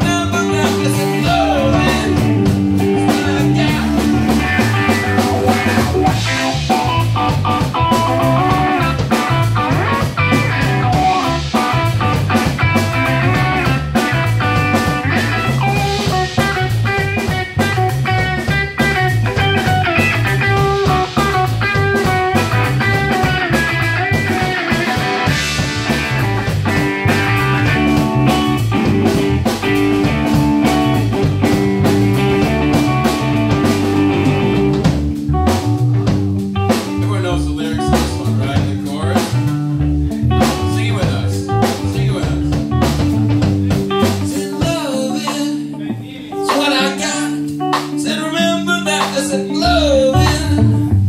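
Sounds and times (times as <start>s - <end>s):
lead vocals singing: 0.0s - 5.6s
rock band playing: 0.0s - 51.0s.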